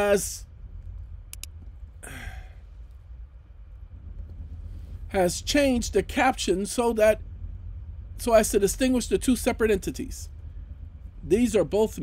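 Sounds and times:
low steady hum: 0.0 - 12.0
man sighing: 2.0 - 2.6.

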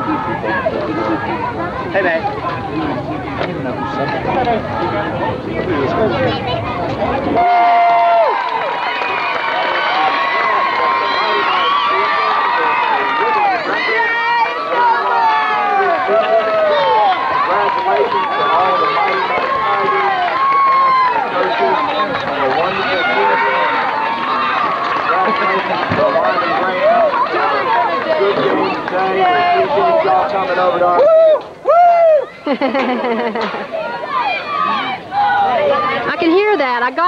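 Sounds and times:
crowd chattering and shouting: 0.0 - 37.0
person shouting woo: 31.0 - 32.3.

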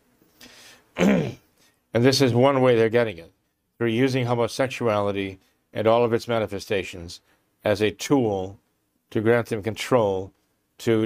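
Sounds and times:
man clearing throat: 1.0 - 1.5.

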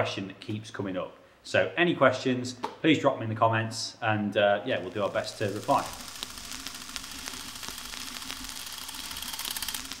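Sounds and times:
steady hiss: 4.4 - 10.0
rapid clicking: 6.1 - 10.0.

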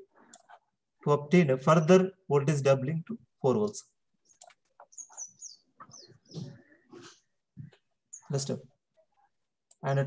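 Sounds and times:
bird chirping: 3.7 - 10.0.

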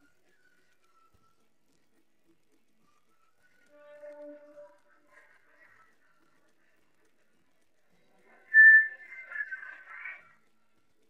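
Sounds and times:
high whistle-like note: 3.7 - 4.9, 8.5 - 9.6.

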